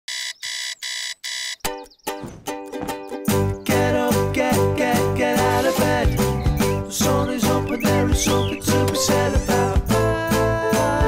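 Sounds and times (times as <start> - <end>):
alarm clock beeping: 0.1 - 1.9
ukulele chord strummed: 2.2 - 11.0.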